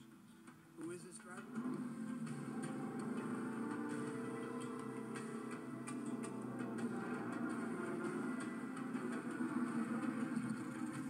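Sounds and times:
faint irregular ticking: 0:00.4 - 0:11.0
motorcycle engine running: 0:01.5 - 0:11.0.

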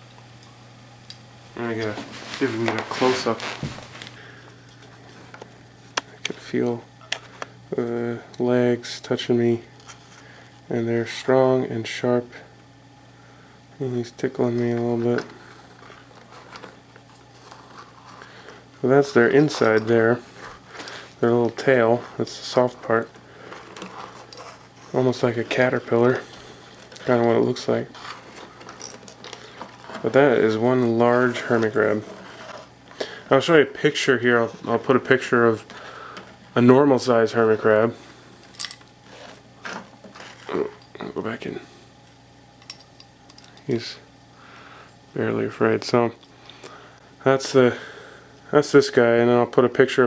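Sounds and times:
steady low hum: 0:00.0 - 0:50.0
rustling handling noise: 0:01.6 - 0:07.6, 0:14.1 - 0:41.2.

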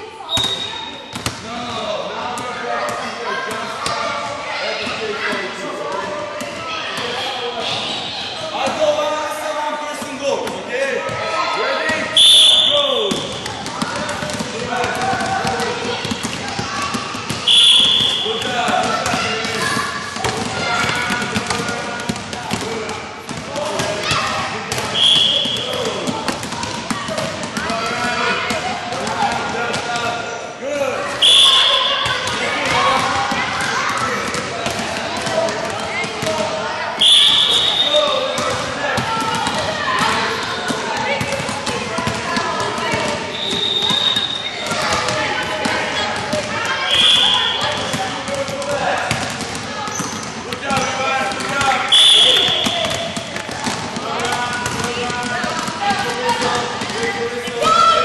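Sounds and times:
voices in echoing hall: 0:00.0 - 0:58.0
basketballs bouncing on gym floor: 0:00.3 - 0:05.0, 0:10.0 - 0:30.2, 0:31.0 - 0:58.0.

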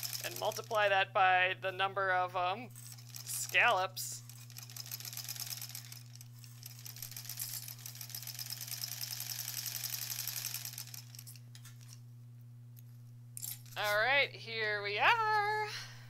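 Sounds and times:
sewing machine stitching: 0:00.0 - 0:00.8, 0:02.8 - 0:11.4.

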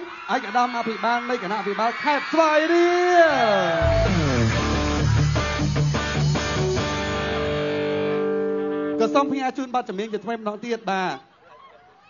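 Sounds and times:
man calling out over pa system: 0:09.0 - 0:11.2.

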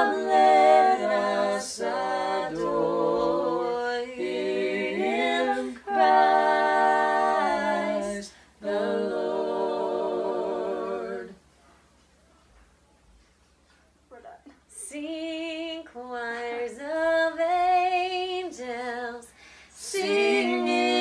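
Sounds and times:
voices singing in harmony: 0:00.0 - 0:11.5, 0:15.0 - 0:21.0.

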